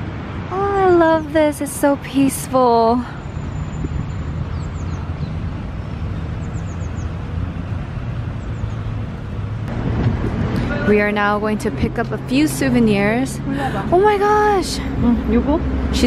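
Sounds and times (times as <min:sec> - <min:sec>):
distant city traffic rumble: 0:00.0 - 0:16.0
wind: 0:00.0 - 0:16.0
busy shop interior: 0:10.2 - 0:16.0.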